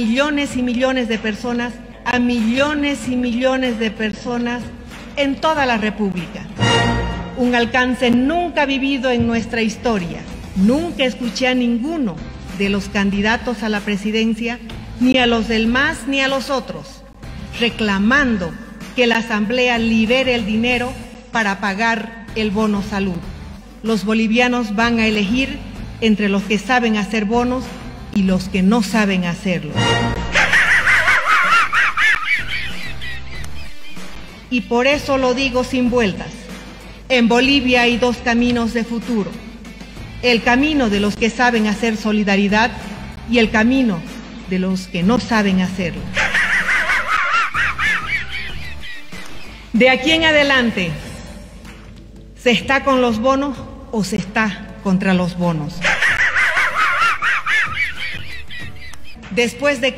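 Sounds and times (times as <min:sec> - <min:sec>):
music: 0:00.0 - 0:59.9
cartoon dog snickering laugh: 0:30.3 - 0:34.1, 0:46.1 - 0:49.2, 0:55.8 - 0:59.2.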